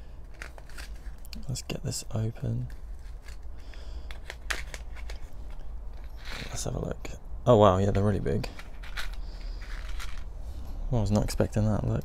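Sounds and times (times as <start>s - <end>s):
paper packet crinkling: 0.2s - 1.6s, 2.6s - 6.6s, 8.4s - 10.4s.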